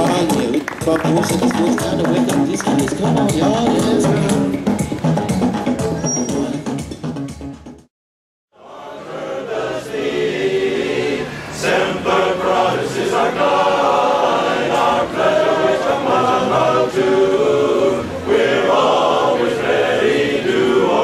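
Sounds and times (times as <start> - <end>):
men's barbershop chorus singing: 8.6 - 21.0.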